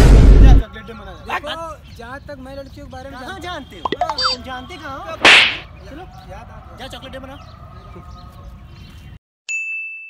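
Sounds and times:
slap to the face: 5.2s - 5.6s.

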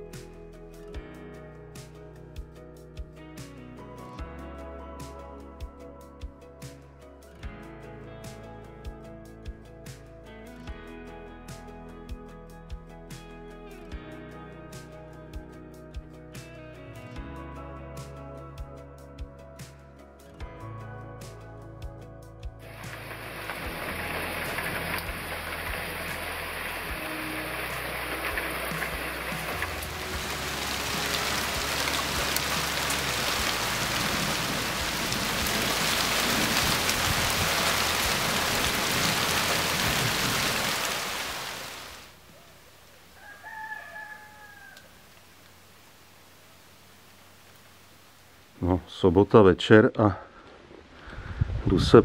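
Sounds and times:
rain on foliage and mug: 22.6s - 49.3s.

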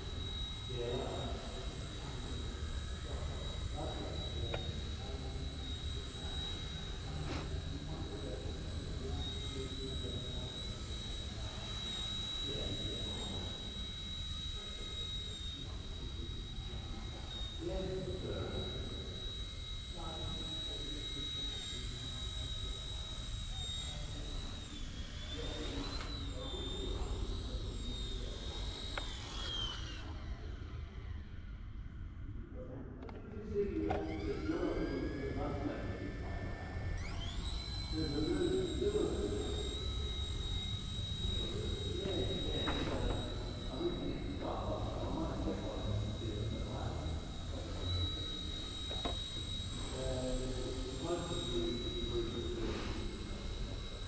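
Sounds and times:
toy helicopter rotor whine: 0.0s - 54.0s.

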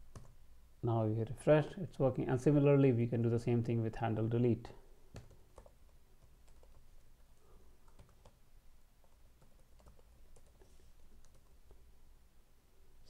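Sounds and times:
faint computer keyboard typing: 0.0s - 0.4s, 5.1s - 8.4s, 9.0s - 11.8s.

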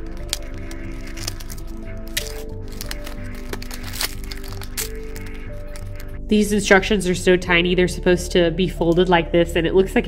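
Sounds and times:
blister pack crackling open: 0.0s - 6.2s.

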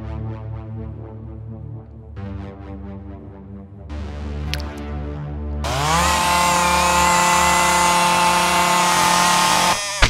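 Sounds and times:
electric can opener whirring: 5.7s - 10.0s.

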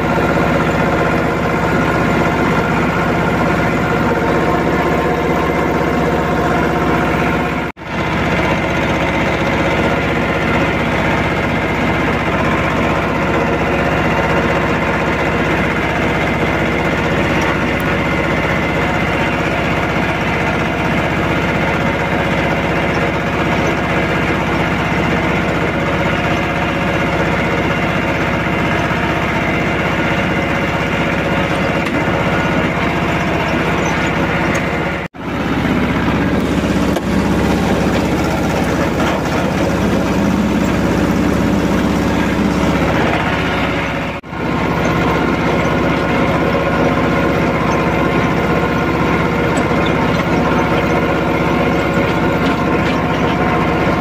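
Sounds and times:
tractor diesel engine running: 0.0s - 54.0s.

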